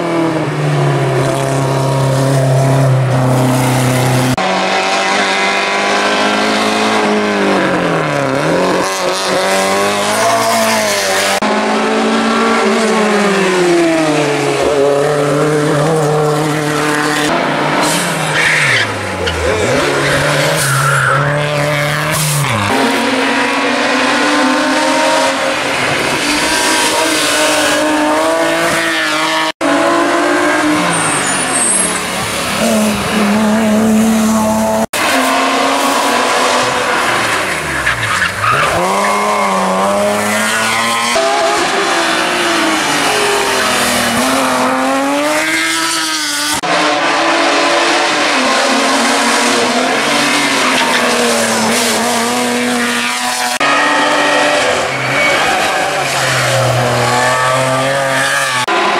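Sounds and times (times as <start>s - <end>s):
race car engines revving: 0.0s - 58.9s
tyre squeal: 53.0s - 58.7s.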